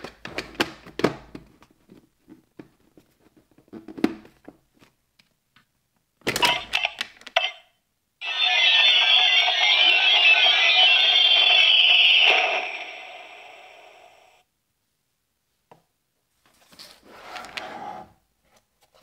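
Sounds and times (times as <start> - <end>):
electronic toy sound effect: 6.4 - 7.0, 8.2 - 14.4.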